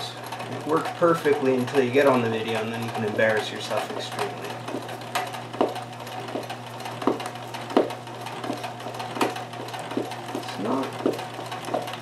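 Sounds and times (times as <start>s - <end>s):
sewing machine motor hum: 0.0s - 12.0s
sewing machine needle knocks: 4.7s - 12.0s.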